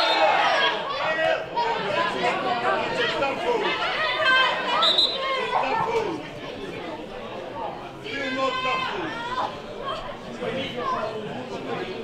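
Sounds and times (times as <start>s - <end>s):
voices calling and talking: 0.0s - 12.0s.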